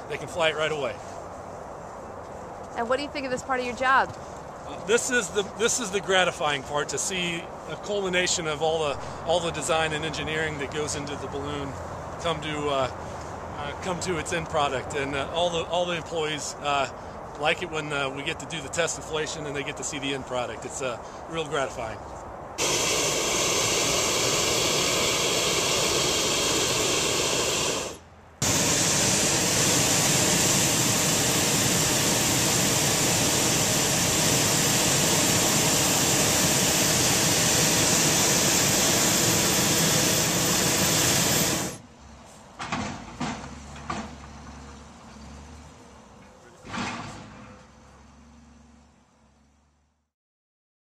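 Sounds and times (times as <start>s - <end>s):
propane burner hissing rush: 4.9s - 11.0s, 22.6s - 41.8s.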